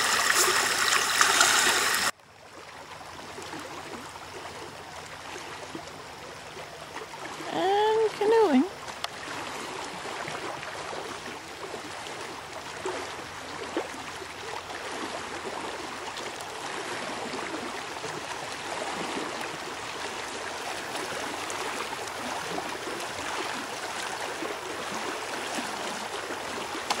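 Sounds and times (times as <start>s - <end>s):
outdoor rushing hiss: 0.0s - 2.1s.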